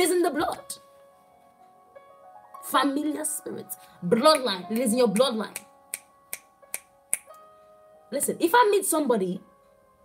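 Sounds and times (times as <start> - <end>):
soft keyboard chords: 0.0 - 10.0
fingers snapping: 4.3 - 7.4.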